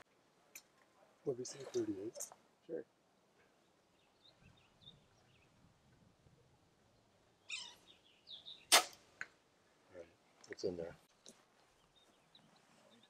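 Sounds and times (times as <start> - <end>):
bow string release crack: 8.7 - 9.3.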